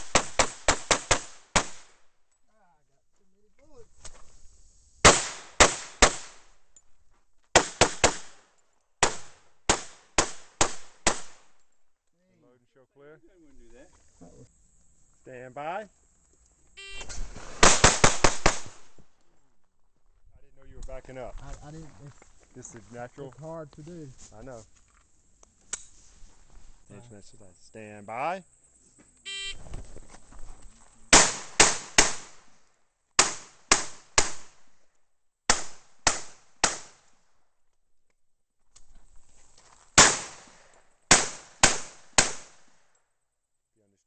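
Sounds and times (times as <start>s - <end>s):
pistol shots: 0.0s - 1.9s, 7.6s - 8.4s, 9.0s - 11.5s, 17.6s - 18.9s, 31.1s - 32.4s, 35.5s - 37.0s, 40.0s - 42.7s
shot timer beep: 16.8s - 17.1s, 29.3s - 29.6s.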